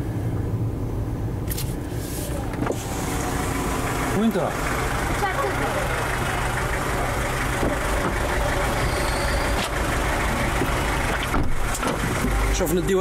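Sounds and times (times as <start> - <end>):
car engine hum inside cabin: 0.0 - 13.0.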